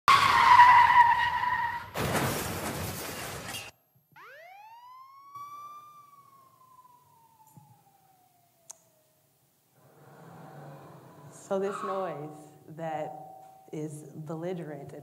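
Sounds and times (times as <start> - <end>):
loud steady blaring tone: 4.1 - 9.0
police siren wail: 4.2 - 9.2.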